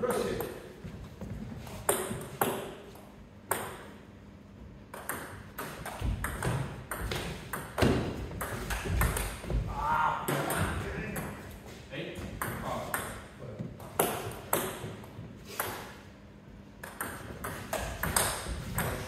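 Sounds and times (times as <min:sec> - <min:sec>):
ball bouncing on table: 0:04.9 - 0:09.6, 0:16.8 - 0:19.0.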